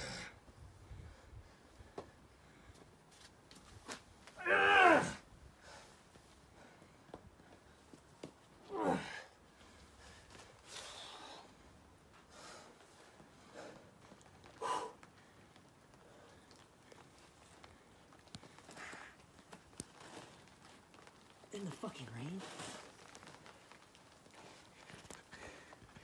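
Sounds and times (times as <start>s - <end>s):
person grunting: 8.7s - 9.2s.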